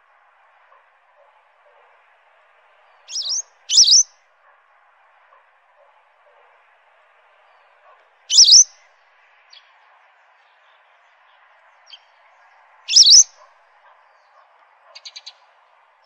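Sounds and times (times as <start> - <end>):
bird calling: 3.1 - 4.1, 8.3 - 8.7, 12.9 - 13.5.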